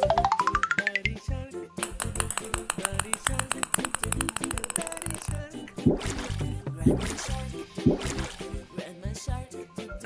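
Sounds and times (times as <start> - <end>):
children's background music: 0.0 - 10.0
rapid run of clicks: 1.8 - 5.6.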